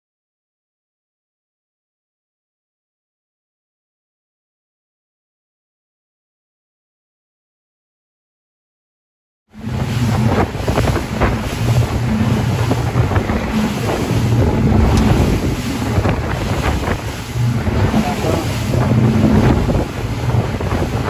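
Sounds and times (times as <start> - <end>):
boat engines droning: 9.5 - 21.0
water rushing along hull: 9.5 - 21.0
wind buffeting microphone: 9.5 - 21.0.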